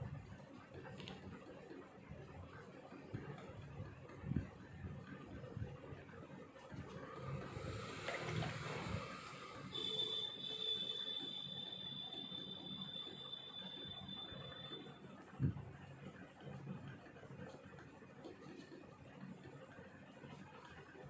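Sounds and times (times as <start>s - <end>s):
high-pitched whistle: 9.7s - 15.0s.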